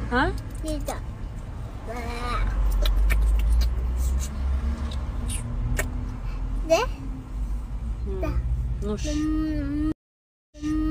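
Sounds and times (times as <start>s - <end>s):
girl's voice: 1.8s - 3.0s, 6.6s - 7.1s, 8.1s - 10.0s.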